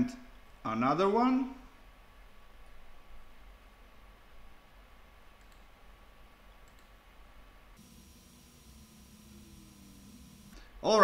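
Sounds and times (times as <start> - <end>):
quiet steady hum: 0.0 - 11.0
computer mouse clicks: 5.4 - 5.8, 6.6 - 7.0.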